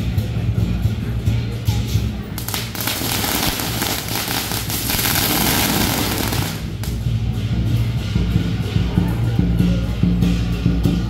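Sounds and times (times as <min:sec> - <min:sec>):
band music: 0:02.0 - 0:11.0
firecrackers crackling: 0:02.3 - 0:07.3.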